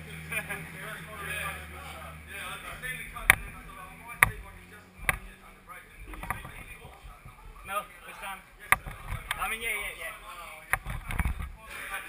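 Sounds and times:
faint distant voices: 0.0s - 12.0s
sharp knocks: 4.2s - 5.4s.

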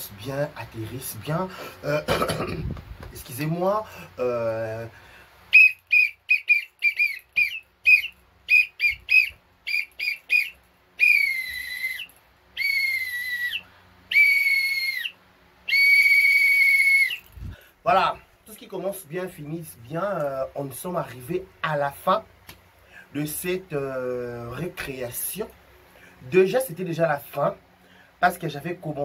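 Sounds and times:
plastic whistle blasts: 5.5s - 17.3s.

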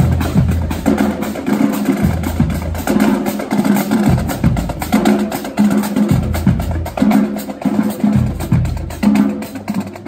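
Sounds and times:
bass drums: 0.0s - 10.0s
snare drums: 0.0s - 10.0s.

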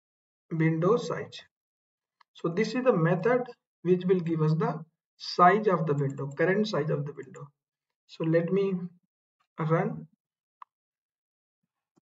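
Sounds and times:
man speaking: 0.5s - 1.4s, 2.4s - 7.4s, 8.1s - 8.9s, 9.6s - 10.0s.

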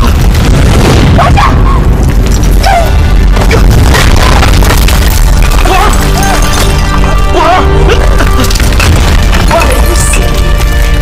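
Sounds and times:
dramatic soundtrack music: 1.3s - 11.0s
crashing splintering impacts: 2.0s - 7.2s, 8.0s - 11.0s
man crying out: 7.2s - 8.5s.

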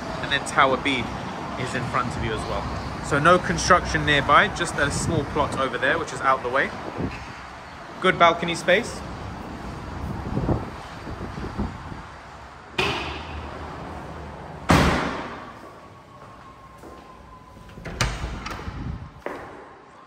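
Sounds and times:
door thudding shut: 14.7s - 15.4s.

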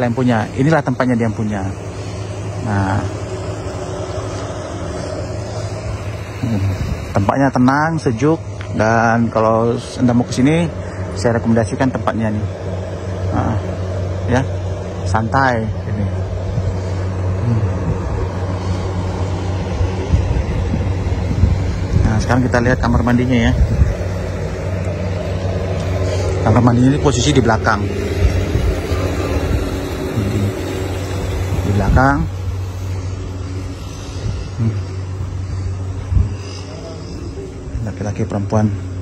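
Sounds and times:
constant hum: 0.0s - 39.0s
low rumble: 0.0s - 39.0s.

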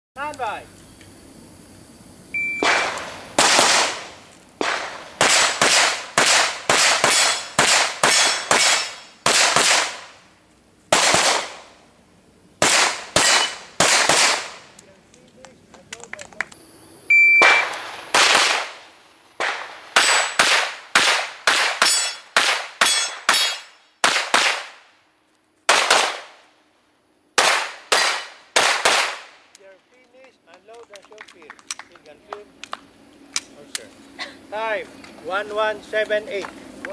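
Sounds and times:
shot timer beep: 2.4s - 2.6s, 17.1s - 17.8s
pistol shots: 2.6s - 10.1s, 10.9s - 11.7s, 12.6s - 14.6s, 17.4s - 18.8s, 19.4s - 24.8s, 25.7s - 26.4s, 27.4s - 29.4s.

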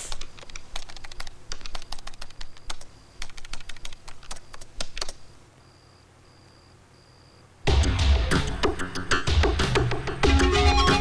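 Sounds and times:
typing on laptop keyboard: 0.0s - 5.2s.

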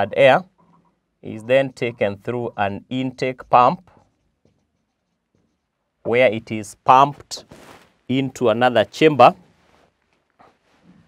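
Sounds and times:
marker writing on whiteboard: 3.2s - 5.9s.

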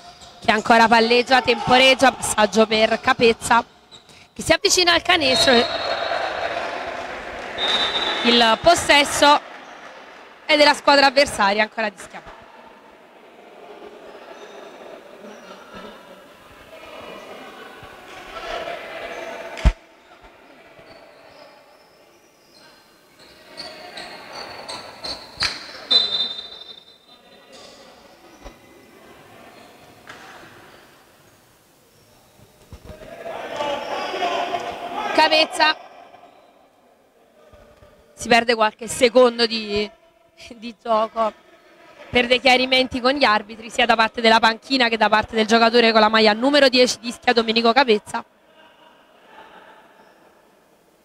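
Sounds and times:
voices echoing in sports hall: 0.0s - 51.0s.

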